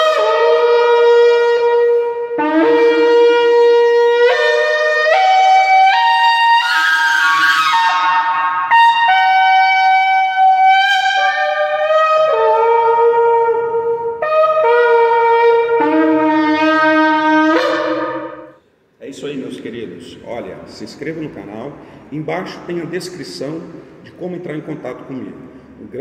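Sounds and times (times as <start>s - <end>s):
shofar notes: 0.0s - 18.6s.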